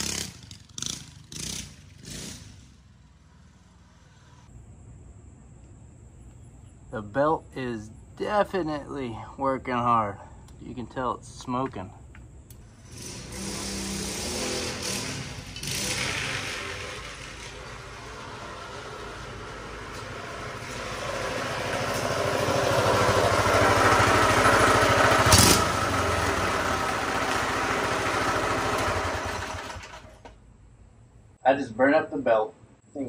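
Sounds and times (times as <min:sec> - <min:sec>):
engine revving under load: 0:00.0 - 0:04.5, 0:12.6 - 0:30.3.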